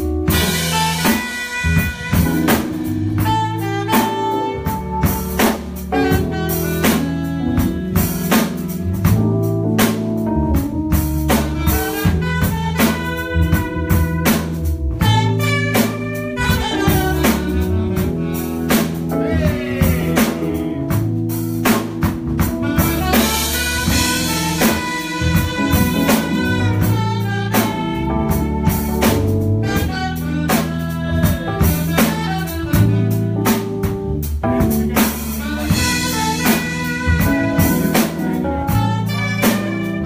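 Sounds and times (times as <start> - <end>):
drum kit beat: 0.0 - 40.0
electric guitar: 0.0 - 40.0
keyboard: 0.0 - 40.0
saxophone lead: 0.0 - 40.0.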